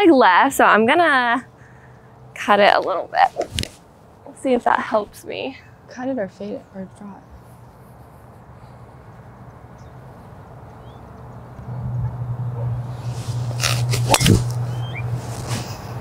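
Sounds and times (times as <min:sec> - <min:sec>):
steady low hum: 0:00.6 - 0:16.0.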